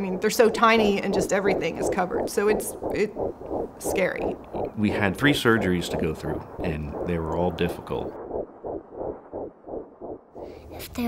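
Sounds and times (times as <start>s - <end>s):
fast muffled heartbeat: 0.0s - 11.0s.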